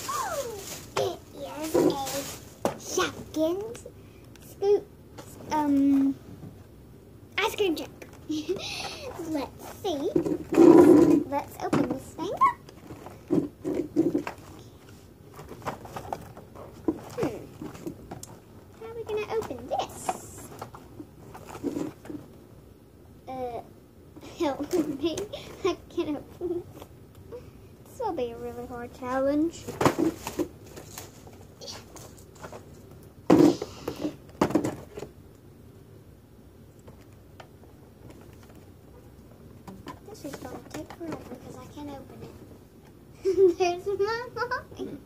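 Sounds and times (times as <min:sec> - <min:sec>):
loud rustle and knock: 0:00.0 - 0:03.4, 0:29.6 - 0:35.2
toy packaging rustling: 0:00.0 - 0:03.8, 0:08.0 - 0:18.4, 0:19.0 - 0:22.2, 0:29.6 - 0:32.9.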